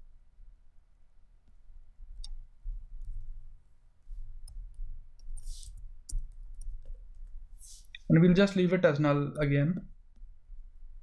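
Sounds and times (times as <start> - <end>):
low electrical hum: 0.0 - 11.0
keyboard and mouse clicks: 4.4 - 8.1
short soft hiss: 5.3 - 5.8, 7.5 - 8.1.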